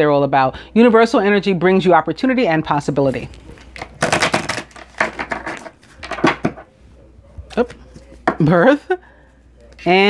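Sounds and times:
cards being shuffled: 3.2 - 6.6.

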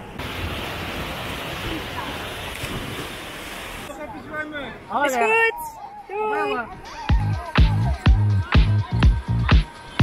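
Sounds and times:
sea water rushing: 0.0 - 4.0.

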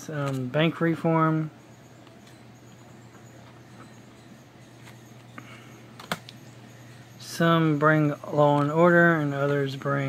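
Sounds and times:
cards clicking: 0.2 - 0.5, 6.0 - 6.4.

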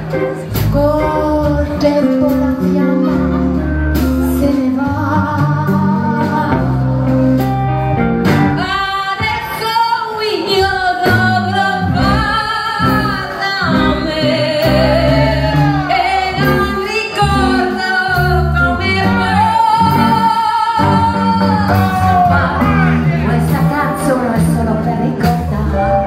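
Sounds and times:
rockabilly band playing: 0.0 - 26.0
woman singing: 0.5 - 26.0.

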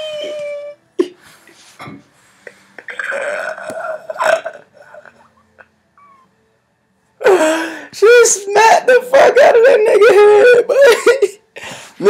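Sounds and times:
man laughing hard: 8.6 - 11.4.

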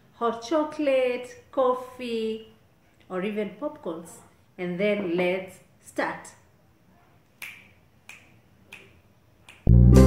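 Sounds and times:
finger snaps: 7.4 - 9.8
loud music with heavy bass: 9.7 - 10.0.

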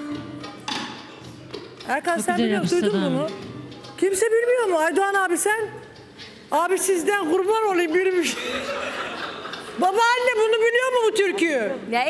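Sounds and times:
person speaking: 2.0 - 3.4.

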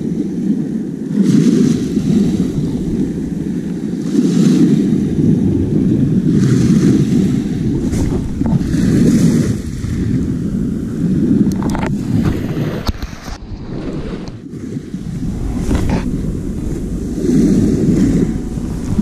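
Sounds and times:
small waves washing on beach: 0.0 - 19.0
wind rumble on microphone: 0.0 - 19.0.

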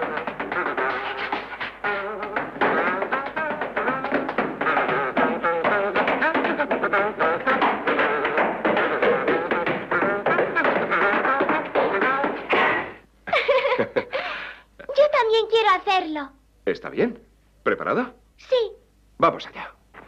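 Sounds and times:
tap steps on stairs: 0.0 - 13.0.

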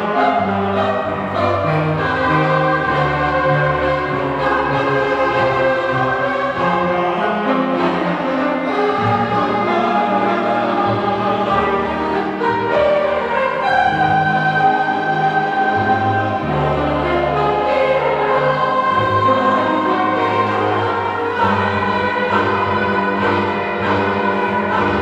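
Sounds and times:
mixed choir singing: 0.0 - 25.0
string ensemble: 0.0 - 25.0.

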